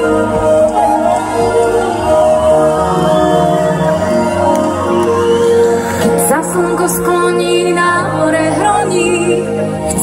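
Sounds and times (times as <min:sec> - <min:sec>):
live pop band music: 0:00.0 - 0:10.0
woman singing: 0:06.0 - 0:10.0.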